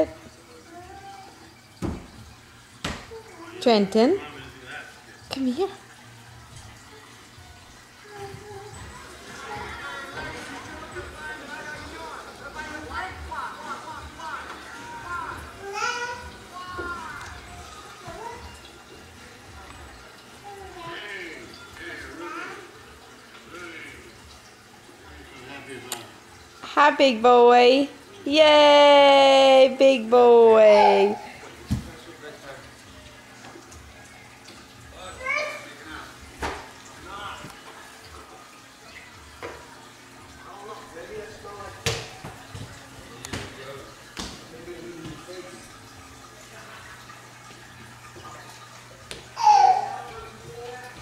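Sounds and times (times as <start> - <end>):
toddler babbling: 0.7 - 1.4, 8.0 - 8.9, 15.5 - 17.2, 30.6 - 31.4, 35.2 - 35.7, 49.4 - 50.8
knocks on a hard floor: 1.8 - 2.1, 2.8 - 3.1, 31.7 - 31.9
infant babbling: 30.7 - 31.4, 49.4 - 50.2.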